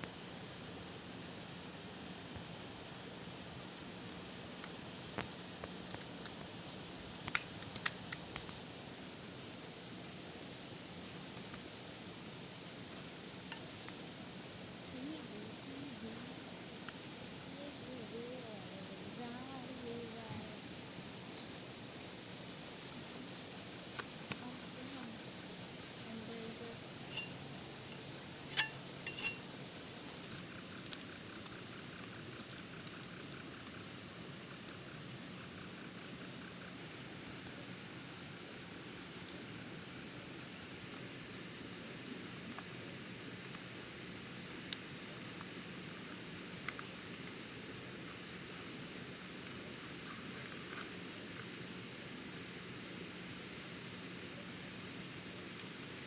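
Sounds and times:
crickets chirping: 0.0 - 56.0
lower pulsing insect call: 0.0 - 56.0.

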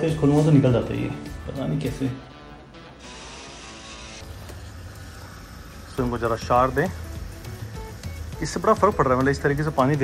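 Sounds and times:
water hissing from hose spray gun: 3.0 - 10.0.

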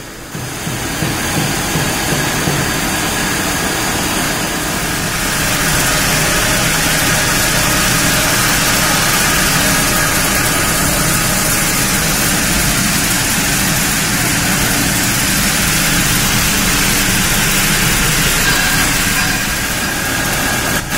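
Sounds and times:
extrusion machine noise: 0.0 - 20.9.

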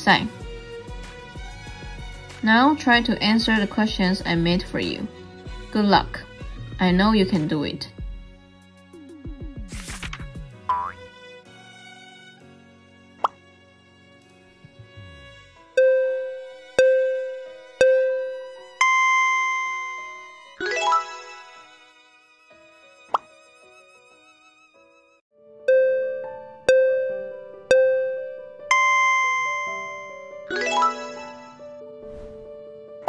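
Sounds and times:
soft background music: 0.0 - 33.0
springy falling bloops: 10.7 - 11.0
bright pitched ping: 25.7 - 30.4.

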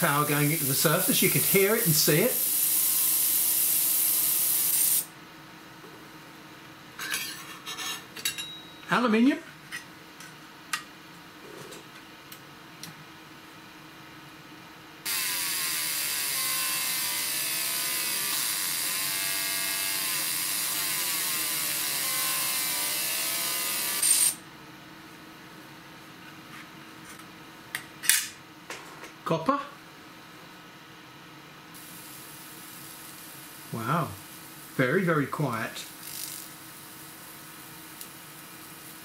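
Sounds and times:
laser hissing on metal: 0.0 - 5.1, 31.8 - 39.0.

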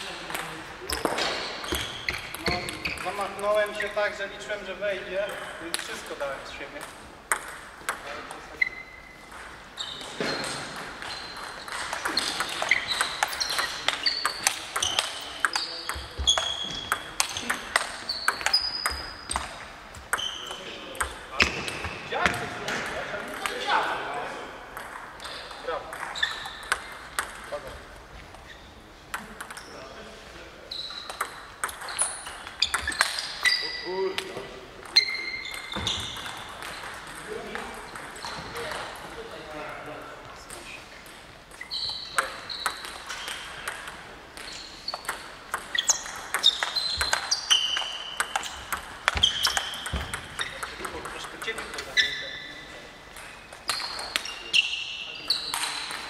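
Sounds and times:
table tennis balls clicking: 5.2 - 8.4, 9.2 - 21.9, 24.7 - 28.5, 29.1 - 29.8, 30.8 - 33.6, 34.2 - 39.1, 40.5 - 52.4, 53.1 - 54.5.

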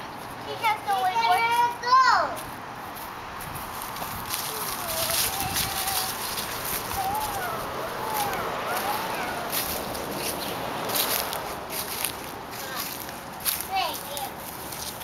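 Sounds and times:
footsteps on dry leaves: 0.2 - 15.0
young children calling and babbling: 0.3 - 2.6, 4.0 - 14.6.

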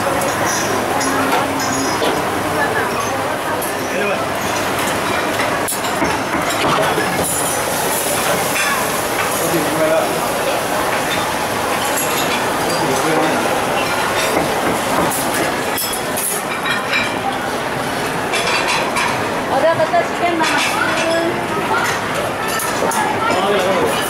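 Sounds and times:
metal utensils clinking: 0.0 - 2.2
gas burners and kitchen machinery: 0.0 - 24.0.

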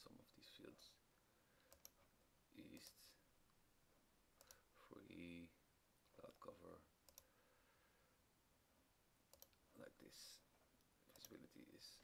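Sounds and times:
faint breath sound: 1.2 - 2.0, 7.2 - 8.3
computer mouse clicks: 1.6 - 2.1, 4.4 - 4.6, 7.0 - 7.3, 9.3 - 9.6, 11.1 - 11.5.

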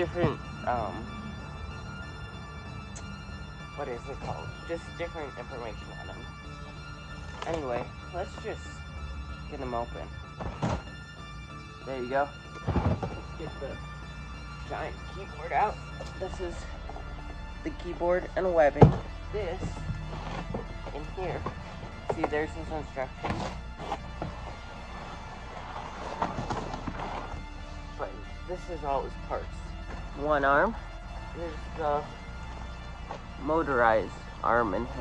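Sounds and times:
background music: 0.0 - 35.0.

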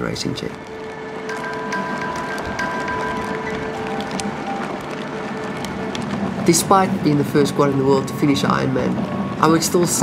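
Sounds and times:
held musical notes: 0.0 - 10.0
wheelchair wheels rolling on tarmac: 0.0 - 10.0.

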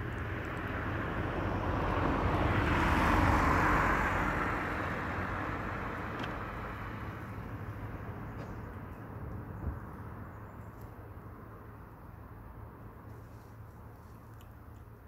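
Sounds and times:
vehicle passing by: 0.0 - 10.3.

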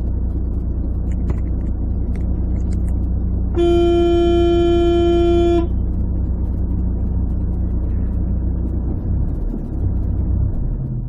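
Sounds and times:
engine and road rumble: 0.0 - 11.0
vehicle horn blast: 3.5 - 5.8.

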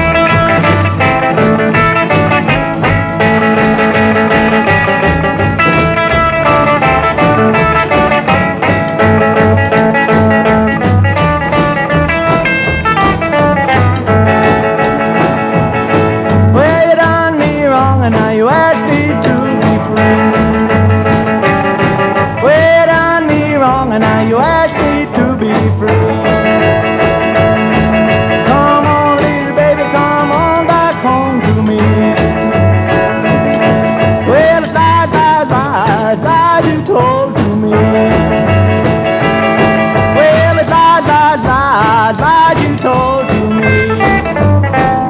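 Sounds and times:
rockabilly guitar over beat: 0.0 - 45.0.

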